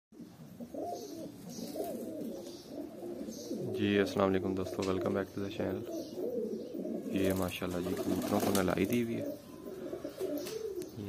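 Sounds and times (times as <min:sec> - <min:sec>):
pigeons cooing: 0:00.2 - 0:11.0.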